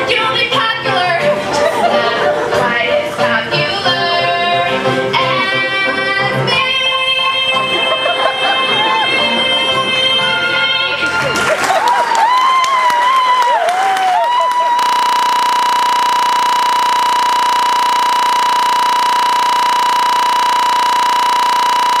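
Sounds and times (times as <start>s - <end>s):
scattered claps: 11.2s - 16.0s
steady tone: 14.8s - 22.0s.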